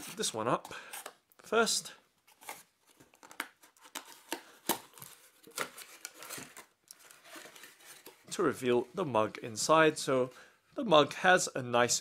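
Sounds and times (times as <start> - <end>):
cardboard box being opened: 2.4 - 8.3.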